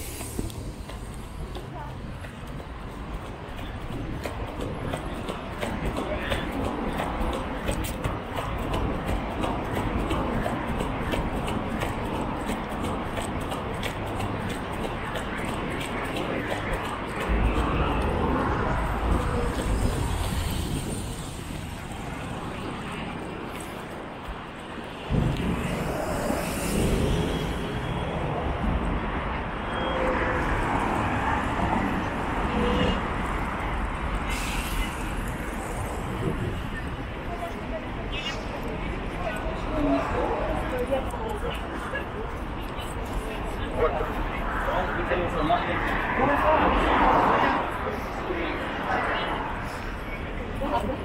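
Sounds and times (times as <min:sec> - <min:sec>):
cars and buses passing: 0:00.0 - 0:51.0
passers-by talking: 0:00.0 - 0:51.0
low rumble: 0:25.1 - 0:29.1.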